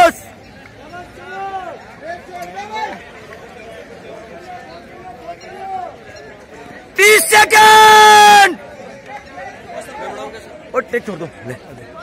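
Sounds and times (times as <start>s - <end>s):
crowd chatter: 0.0s - 12.0s
man shouting: 7.0s - 8.6s.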